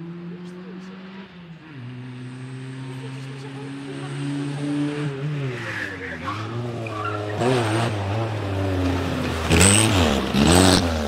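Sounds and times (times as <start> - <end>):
rally car engine under load: 0.0 - 11.0.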